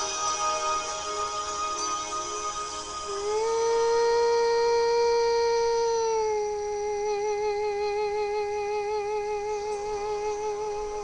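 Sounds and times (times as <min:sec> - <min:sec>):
person singing long note: 0:00.0 - 0:11.0.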